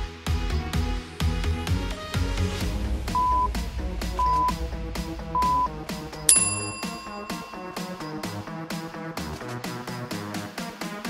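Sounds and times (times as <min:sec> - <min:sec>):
electronic music with steady beat: 0:03.1 - 0:08.4
bell-like timer chime: 0:06.3 - 0:08.5.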